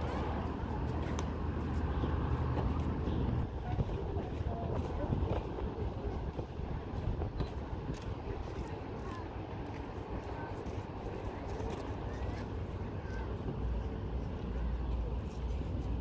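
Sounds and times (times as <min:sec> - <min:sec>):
distant road traffic rumble: 0:00.0 - 0:16.0
faint indistinct voices: 0:00.0 - 0:16.0.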